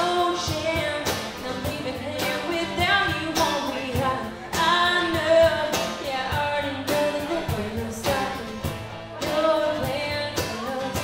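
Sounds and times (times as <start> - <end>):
cajon beat: 0.0 - 11.0
strummed acoustic guitar: 0.0 - 11.0
woman singing: 0.0 - 11.0.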